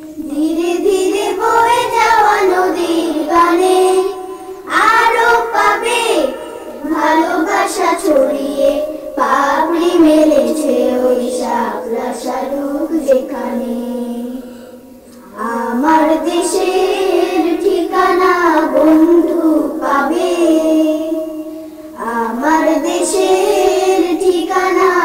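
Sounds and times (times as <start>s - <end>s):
children singing together: 0.0s - 25.0s.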